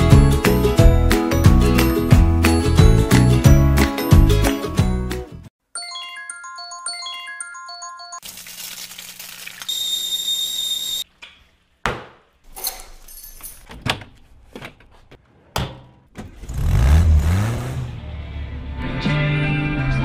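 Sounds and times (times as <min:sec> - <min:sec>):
frying pan sizzling: 0:08.2 - 0:11.0
car engine starting and revving: 0:16.2 - 0:19.1.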